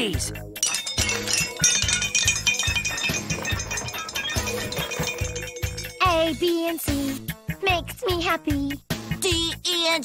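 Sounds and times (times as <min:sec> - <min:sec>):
tinkling bell and chime tones: 0:00.6 - 0:07.2.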